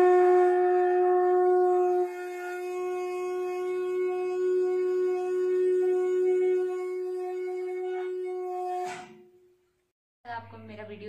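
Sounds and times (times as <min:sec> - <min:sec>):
conch shell blown: 0:00.0 - 0:09.6.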